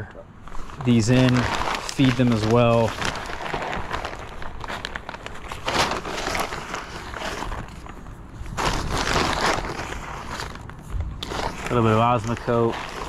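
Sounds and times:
plastic bag rustling and crinkling: 0:00.4 - 0:13.0.

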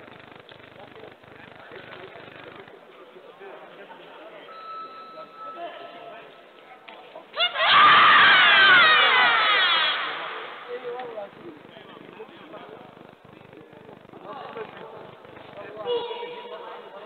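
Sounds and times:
murmur of sports hall: 0:00.0 - 0:17.0
voices shouting: 0:07.3 - 0:10.9.

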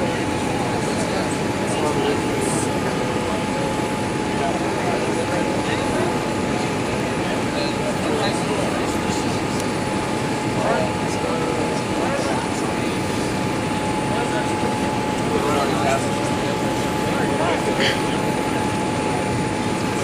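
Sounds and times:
airflow and engine noise in cabin: 0:00.0 - 0:20.0.

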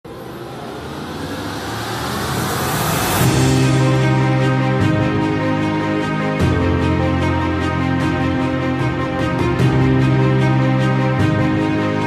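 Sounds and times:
noisy whoosh: 0:00.0 - 0:06.0
held music chord: 0:03.2 - 0:12.0.

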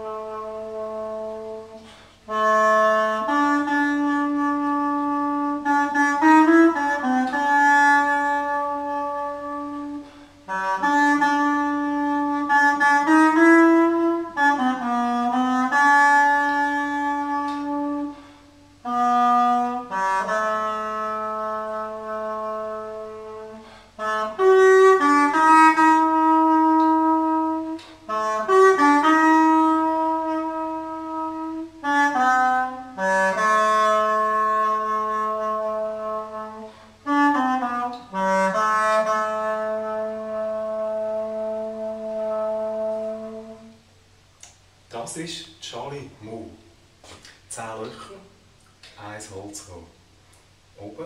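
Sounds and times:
reed woodwind long note: 0:00.0 - 0:43.9.

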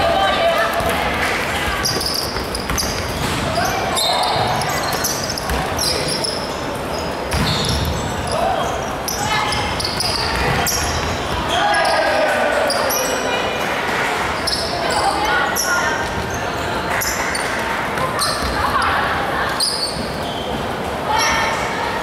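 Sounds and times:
players calling out: 0:00.0 - 0:21.8
sneakers squeaking on court: 0:01.6 - 0:11.9, 0:14.4 - 0:20.9
basketball bouncing: 0:01.8 - 0:03.6, 0:04.4 - 0:05.8, 0:09.5 - 0:11.4.

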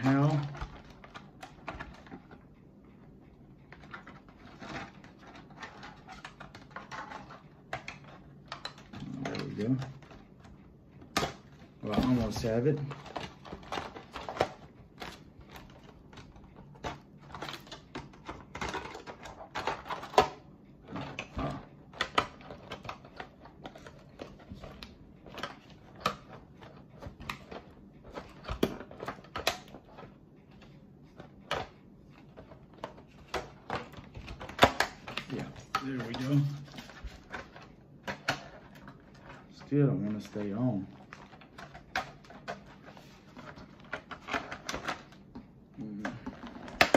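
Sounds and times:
plastic body shell clicks and knocks: 0:03.7 - 0:39.6, 0:40.2 - 0:46.9.

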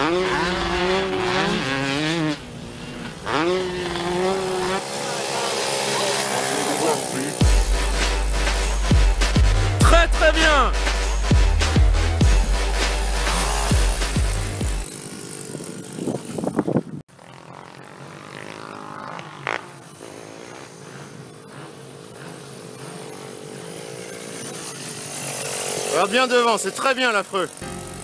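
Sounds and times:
distant dirt bike engine: 0:00.0 - 0:28.0
hip-hop music with heavy bass: 0:07.0 - 0:14.8.

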